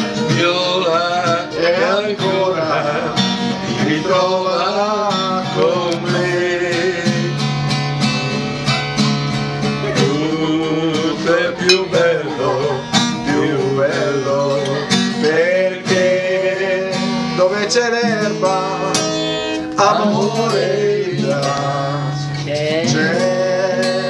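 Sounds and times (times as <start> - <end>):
men singing: 0.0 - 7.5, 9.8 - 24.0
acoustic guitar strumming chords: 0.0 - 24.0.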